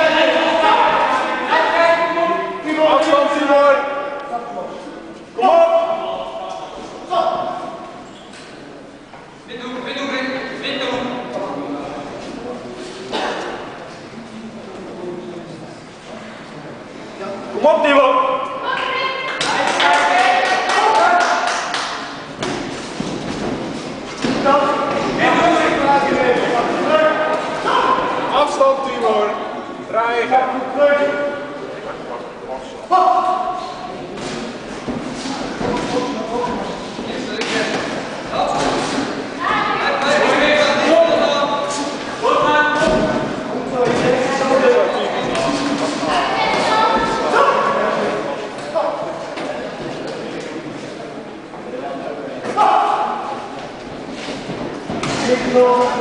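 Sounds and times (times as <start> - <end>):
voices shouting in echoing hall: 0.0 - 56.0
people shouting encouragement: 5.4 - 7.5, 26.8 - 28.4, 46.1 - 48.0, 52.5 - 53.4.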